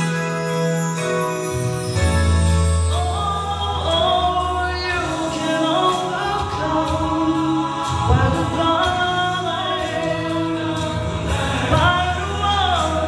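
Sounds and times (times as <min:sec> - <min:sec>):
low instrumental backing: 0:00.0 - 0:13.0
man singing gospel song: 0:02.9 - 0:13.0.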